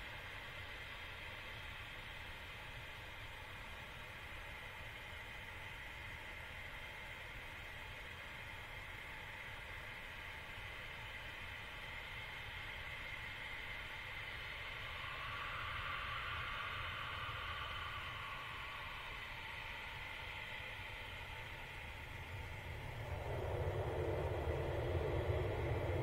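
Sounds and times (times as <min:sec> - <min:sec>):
jet engines roaring: 0:21.5 - 0:26.0.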